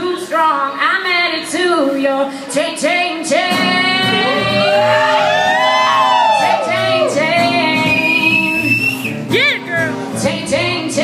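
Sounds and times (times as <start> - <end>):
woman singing: 0.0 - 5.2, 6.4 - 11.0
acoustic guitar: 0.0 - 11.0.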